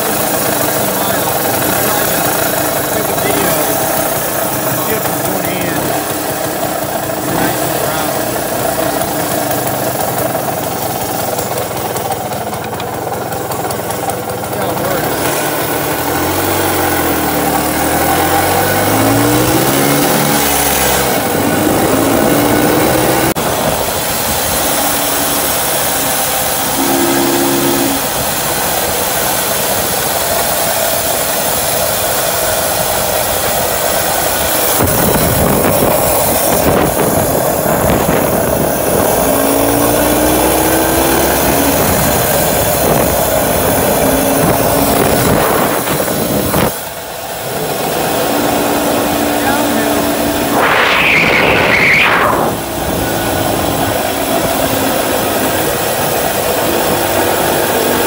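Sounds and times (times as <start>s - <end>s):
scooter engine running: 0.0s - 58.0s.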